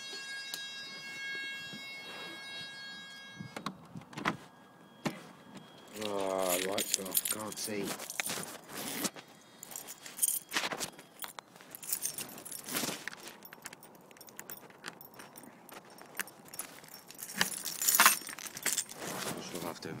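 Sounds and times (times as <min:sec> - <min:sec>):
keys jangling: 0:05.9 - 0:19.1.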